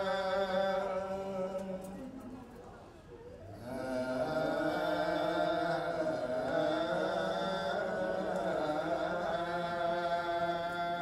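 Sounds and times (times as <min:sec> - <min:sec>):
monks chanting through microphone: 0:00.0 - 0:02.4, 0:03.5 - 0:11.0.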